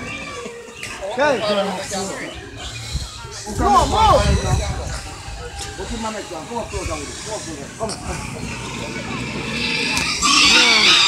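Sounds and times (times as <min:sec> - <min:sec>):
pig grunting: 0:00.0 - 0:11.0.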